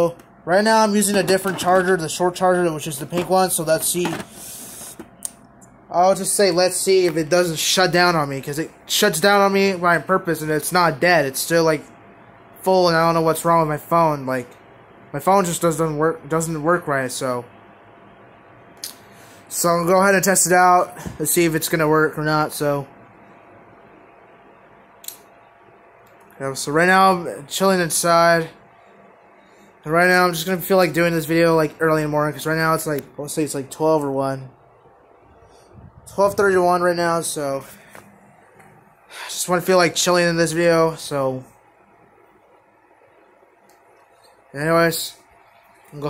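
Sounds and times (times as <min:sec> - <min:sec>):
ceiling fan whirring: 0:00.0 - 0:46.0
sharp click: 0:25.0 - 0:25.3.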